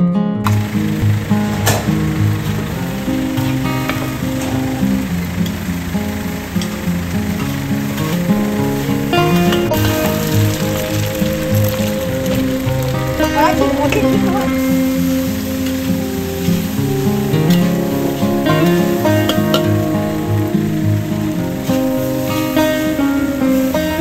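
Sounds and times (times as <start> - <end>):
background music: 0.0 - 24.0
oil sizzling in a wok: 0.5 - 24.0.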